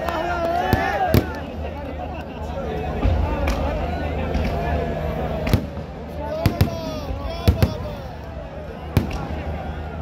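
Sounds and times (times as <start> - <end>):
firecracker bangs: 0.7 - 1.4, 8.9 - 9.4.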